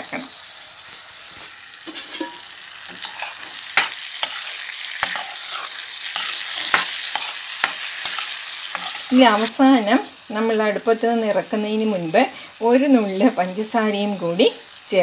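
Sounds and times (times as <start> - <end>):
pickle sizzling in oil: 0.0 - 15.0.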